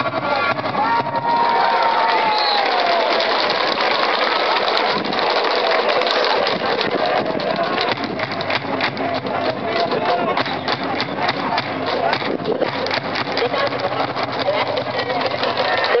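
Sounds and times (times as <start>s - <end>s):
crowd chanting and shouting: 0.0s - 16.0s
sharp percussive hits: 5.1s - 16.0s.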